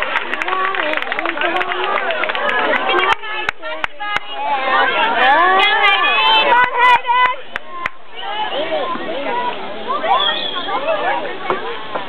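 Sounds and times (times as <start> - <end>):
spectators calling out: 2.9 - 11.9.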